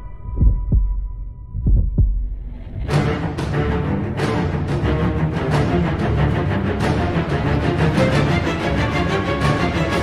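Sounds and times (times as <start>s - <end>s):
heartbeat thumps: 0.1s - 3.0s.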